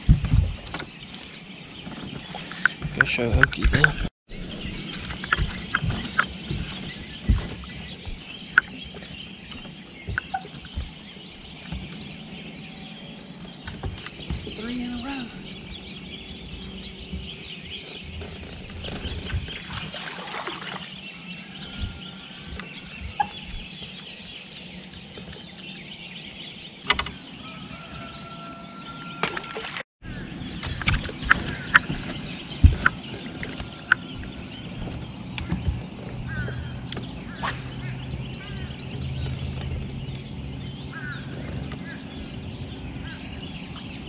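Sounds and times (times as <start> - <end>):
birds calling: 0.0 - 44.0.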